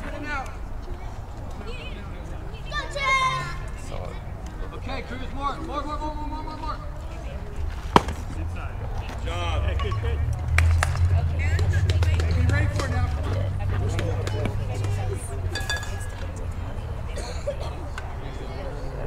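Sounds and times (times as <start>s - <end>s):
people talking: 0.0s - 19.0s
sharp crack: 7.8s - 8.4s.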